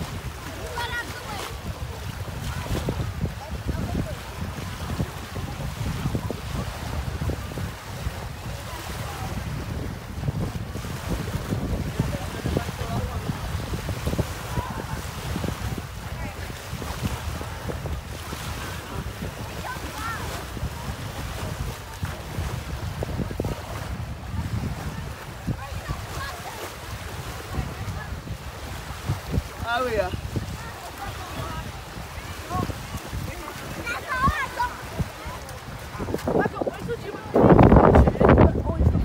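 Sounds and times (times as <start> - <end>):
small waves breaking on beach: 0.0 - 39.0
wind buffeting microphone: 0.0 - 39.0.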